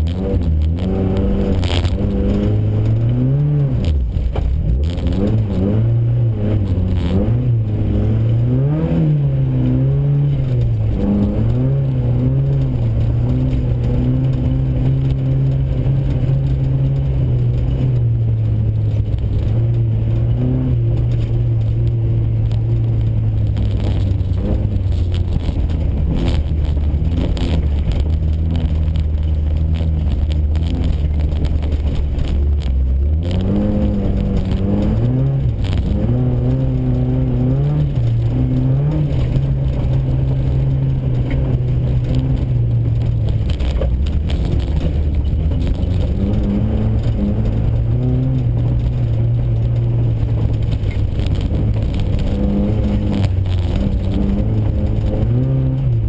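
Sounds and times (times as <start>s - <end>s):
car engine revving: 0.0s - 56.0s.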